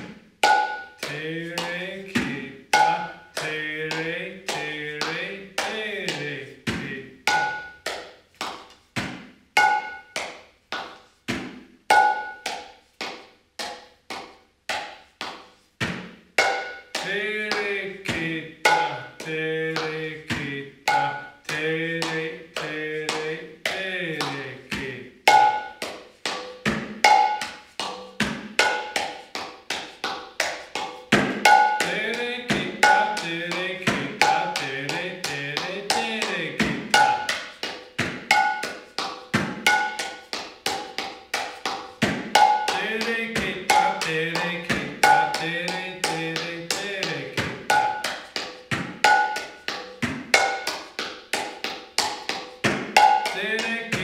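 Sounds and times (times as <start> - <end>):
barrel drum played by hand: 0.0 - 54.0.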